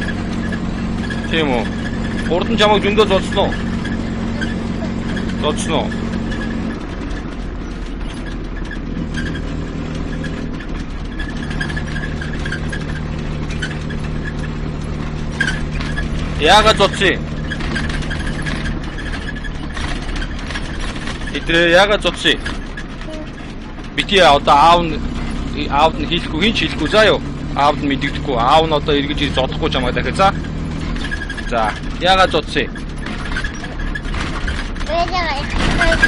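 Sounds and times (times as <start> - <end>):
engine and road hum in cabin: 0.0 - 36.0
small child's voice: 23.0 - 23.5, 34.8 - 36.0.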